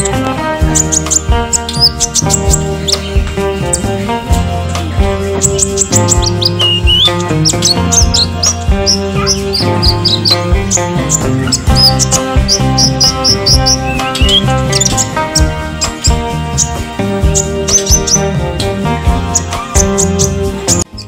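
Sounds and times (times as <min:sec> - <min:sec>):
background music: 0:00.0 - 0:21.0
bird chirping: 0:00.0 - 0:21.0.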